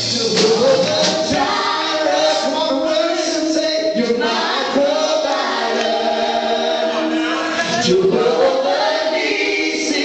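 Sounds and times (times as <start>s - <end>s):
man singing into microphone: 0.0s - 5.4s
congregation singing gospel song: 0.0s - 10.0s.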